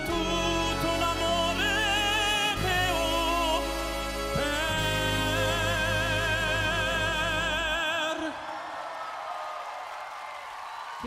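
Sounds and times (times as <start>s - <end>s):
audience applause: 8.0s - 11.0s.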